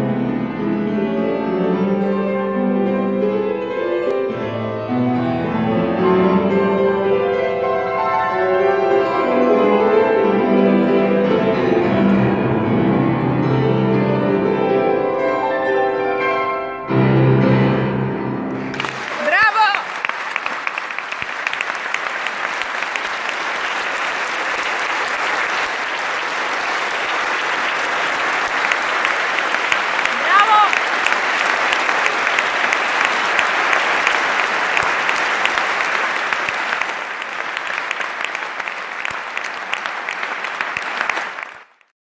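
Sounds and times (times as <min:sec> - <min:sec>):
audience applauding: 0:18.5 - 0:41.9
person calling out: 0:30.1 - 0:30.8.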